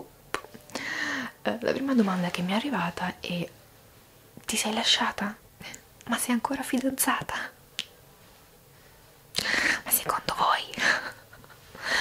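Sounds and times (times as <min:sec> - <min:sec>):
woman whispering: 0:04.5 - 0:07.6, 0:09.8 - 0:11.1.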